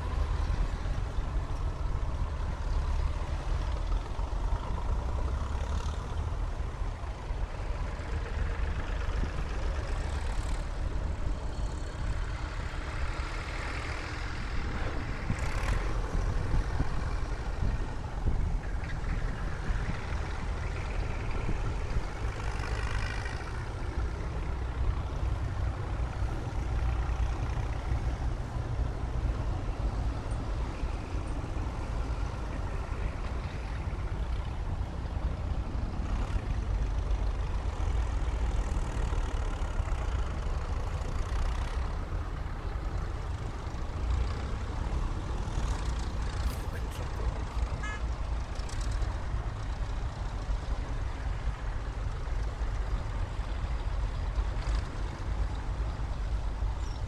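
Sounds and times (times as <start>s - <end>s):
tractor engines rumbling past: 0.0s - 57.0s.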